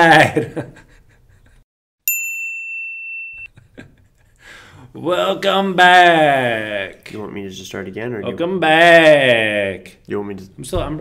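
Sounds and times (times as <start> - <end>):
high bell-like ding: 2.0 - 3.5.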